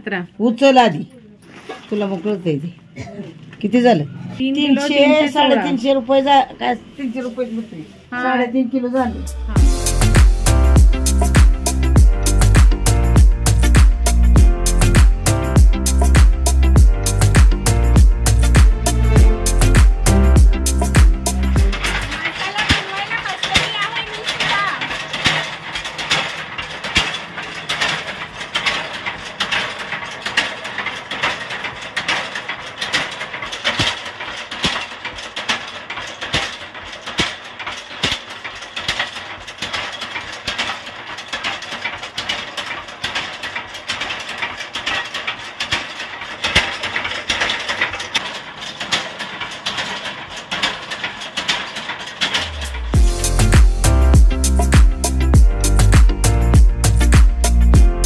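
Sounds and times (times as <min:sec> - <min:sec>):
pounding mill clattering: 0:00.0 - 0:58.0.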